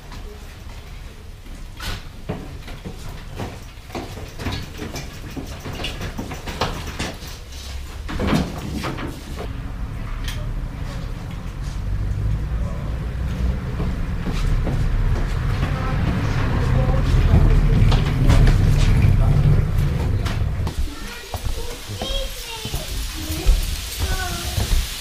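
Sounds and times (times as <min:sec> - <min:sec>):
bicycle knocking and clattering: 0:01.6 - 0:09.6, 0:13.3 - 0:25.0
low vehicle rumble: 0:09.4 - 0:20.7.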